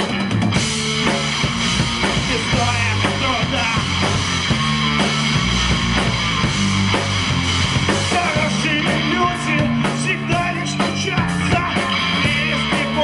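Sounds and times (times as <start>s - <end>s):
live punk rock band: 0.0s - 13.0s.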